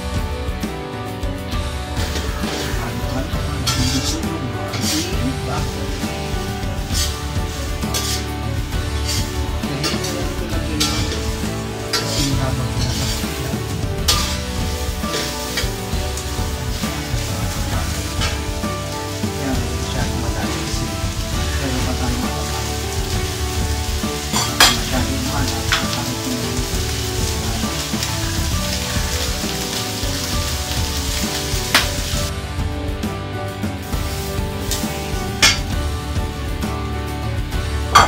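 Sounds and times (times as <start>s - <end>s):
background music: 0.0s - 38.0s
meat sizzling in a wok: 0.0s - 38.0s.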